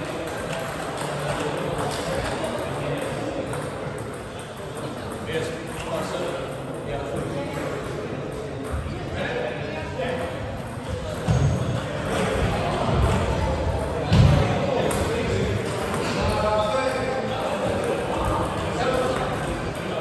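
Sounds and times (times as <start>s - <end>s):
echoing background voices: 0.0s - 20.0s.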